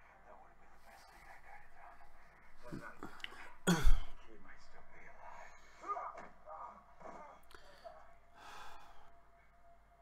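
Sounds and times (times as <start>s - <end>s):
person breathing and gasping: 7.2s - 9.1s.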